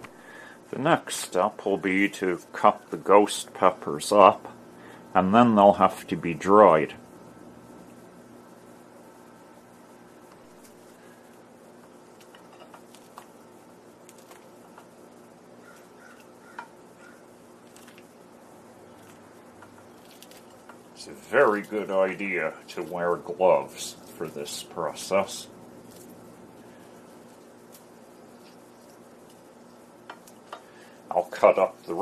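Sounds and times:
steady low hum: 0.0s - 32.0s
shears snipping: 18.9s - 24.7s.

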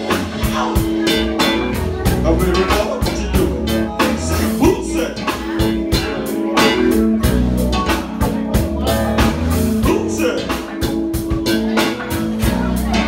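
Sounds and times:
funk band playing: 0.0s - 13.0s.

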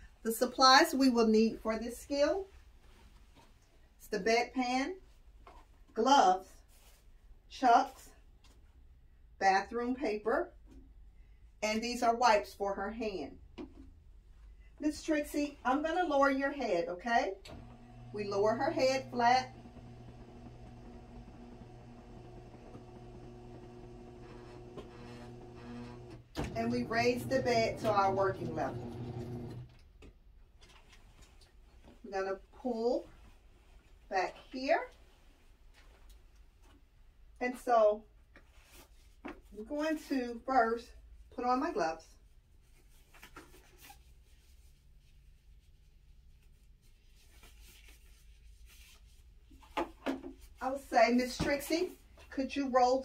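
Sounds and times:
hospital bed motor humming: 17.5s - 29.8s
disposable gloves rustling: 42.3s - 52.4s.

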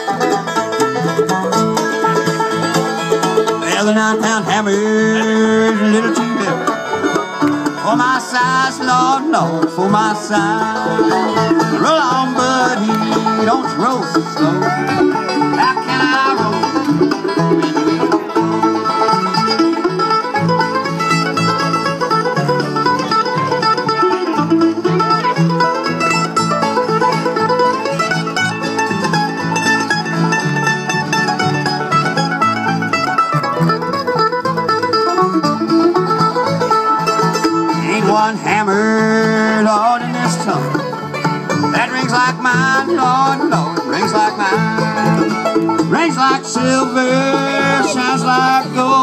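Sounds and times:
acoustic guitar: 0.0s - 49.0s
banjo: 0.0s - 49.0s
fiddle: 0.0s - 49.0s
mandolin: 0.0s - 49.0s
upright bass: 0.0s - 49.0s.

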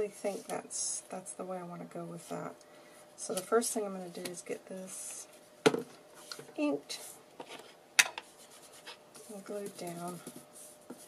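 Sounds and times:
hands rubbing paper on cutting mat: 8.3s - 11.0s.

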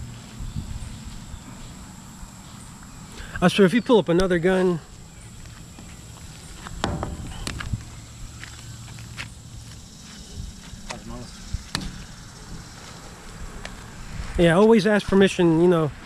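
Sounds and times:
steady high-pitched whine: 0.0s - 16.0s.

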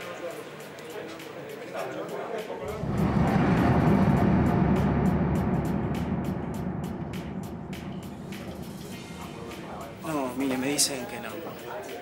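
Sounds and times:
low rumble: 2.6s - 10.7s.

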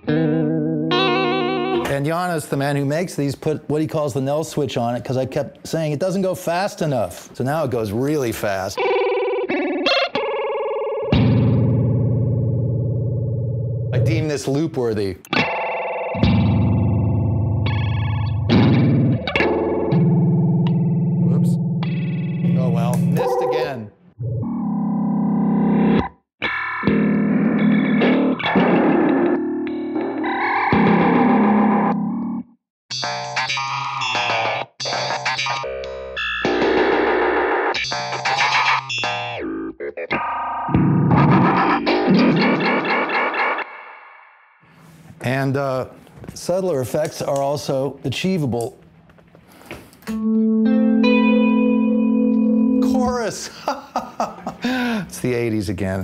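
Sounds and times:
electric guitar stuttering fragments: 40.8s - 44.2s.

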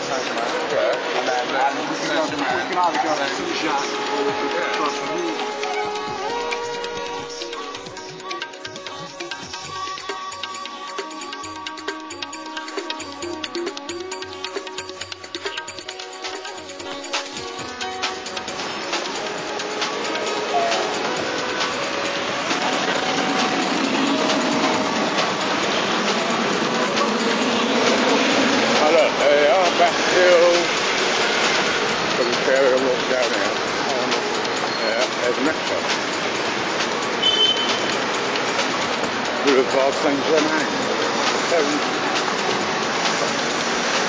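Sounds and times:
traffic: 0.0s - 10.0s, 12.3s - 44.0s
indistinct voices: 0.0s - 11.9s, 15.4s - 44.0s.

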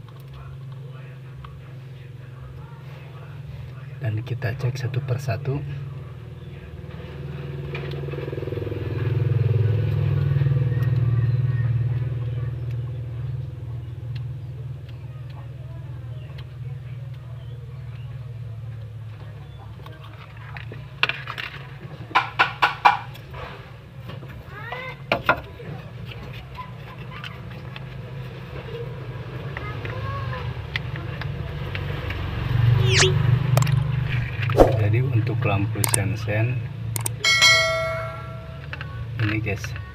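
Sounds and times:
short pitched notes: 32.8s - 35.0s, 37.2s - 38.7s.

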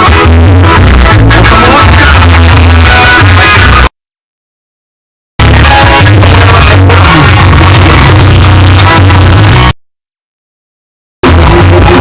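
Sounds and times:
loud music with heavy bass: 0.0s - 4.0s, 5.4s - 9.8s, 11.2s - 12.0s.

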